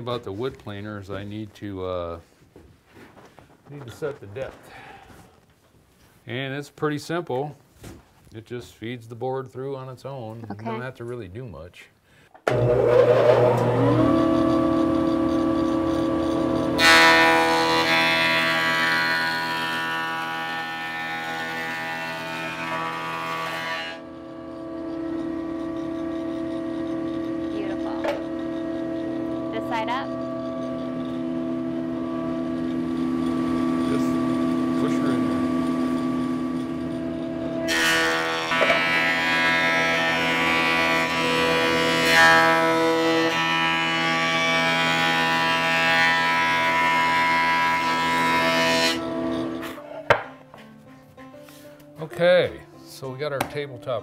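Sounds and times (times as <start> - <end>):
planer cutting board: 12.5 - 50.3
thickness planer motor whine: 12.5 - 50.3.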